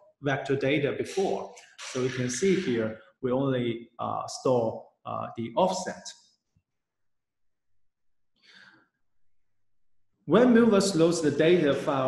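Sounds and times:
faint breath: 0:08.4 - 0:09.0.

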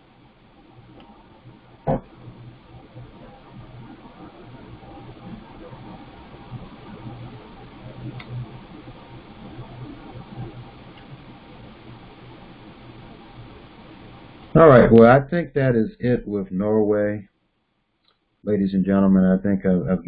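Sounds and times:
faint hum: 0:00.0 - 0:20.0
faint clicks: 0:00.9 - 0:01.2, 0:08.0 - 0:08.4, 0:10.6 - 0:11.4, 0:18.0 - 0:18.3.

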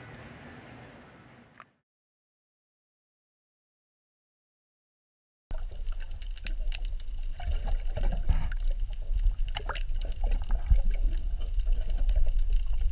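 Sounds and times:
bubbling: 0:05.5 - 0:12.9
clicks and crackles: 0:05.5 - 0:12.9
underwater rushing: 0:05.5 - 0:12.9.

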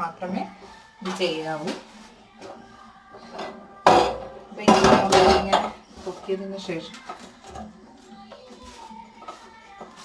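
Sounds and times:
metal stove clanking and rattling: 0:03.3 - 0:05.8.

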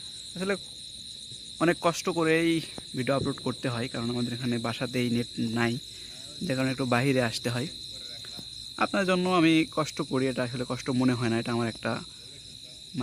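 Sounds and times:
crickets chirring: 0:00.0 - 0:13.0
man talking: 0:00.4 - 0:00.6, 0:01.6 - 0:13.0.

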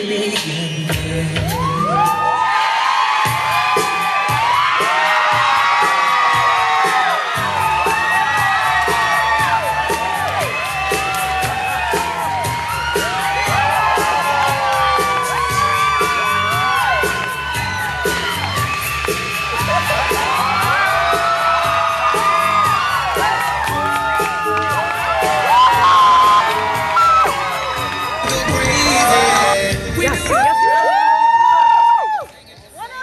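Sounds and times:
music with steady beat: 0:00.0 - 0:02.2, 0:03.3 - 0:30.7
audience cheering and shouting: 0:01.3 - 0:33.0.

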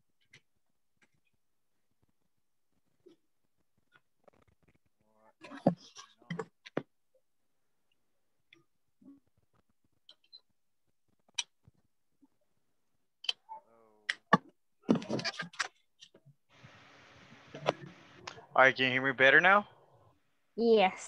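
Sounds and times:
steady hiss: 0:16.5 - 0:19.4.

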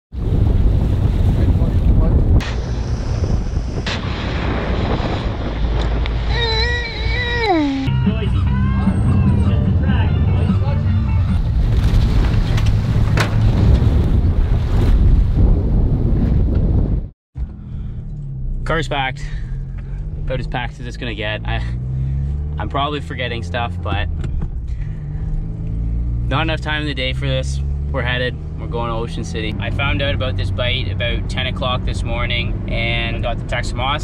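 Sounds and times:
wind rumble on microphone: 0:00.1 - 0:17.1
boat at sea: 0:00.2 - 0:17.1
people calling out: 0:06.3 - 0:11.1.

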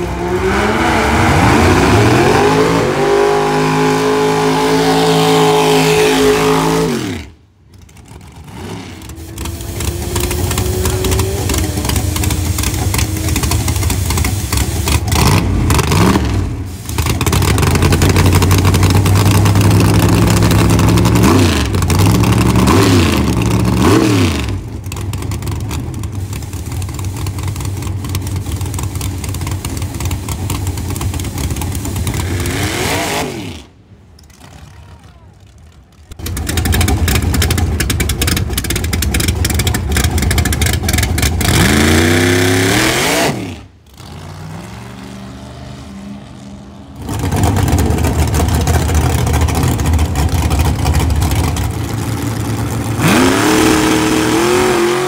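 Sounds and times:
drag-race car engines revving: 0:00.0 - 0:55.0.

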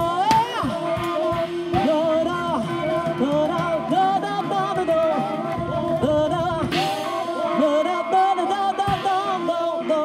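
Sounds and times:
drums: 0:00.0 - 0:10.0
guitar: 0:00.0 - 0:10.0
person singing: 0:00.0 - 0:10.0.

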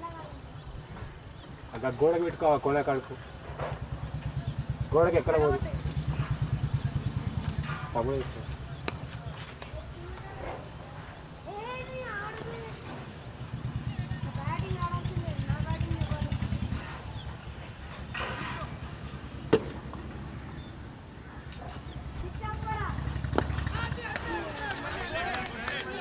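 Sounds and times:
bat hitting ball: 0:19.5 - 0:19.9
players calling out: 0:22.5 - 0:26.0.

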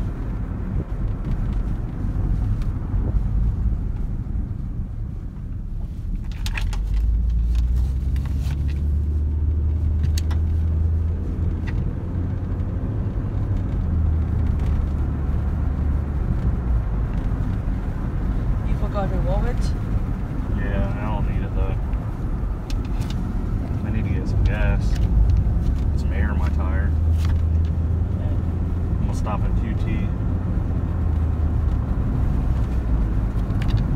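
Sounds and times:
car engine and road rumble: 0:00.0 - 0:33.9.

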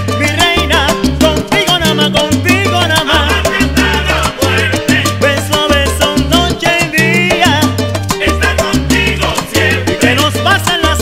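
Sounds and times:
salsa orchestra music: 0:00.0 - 0:11.0.

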